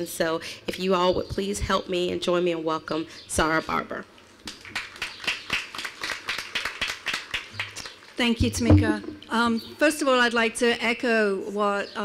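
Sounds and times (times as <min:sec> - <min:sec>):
audience applauding: 0:04.6 - 0:07.9.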